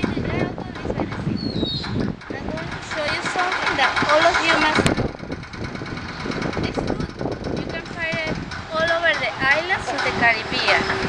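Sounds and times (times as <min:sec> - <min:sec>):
outdoor background noise: 0:00.0 - 0:11.0
woman speaking: 0:02.3 - 0:04.9, 0:06.6 - 0:11.0.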